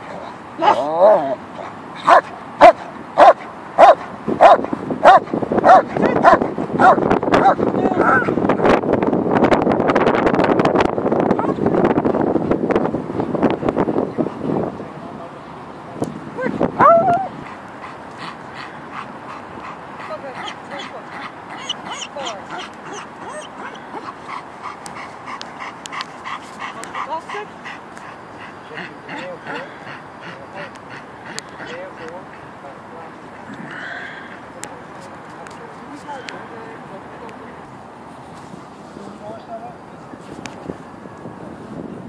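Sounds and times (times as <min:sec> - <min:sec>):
dog barking: 0:00.6 - 0:07.6
dog yelp: 0:21.5 - 0:24.1.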